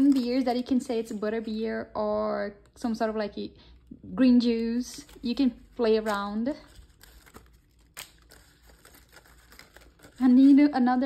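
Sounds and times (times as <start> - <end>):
paper rustling and crinkling: 4.7 - 10.8.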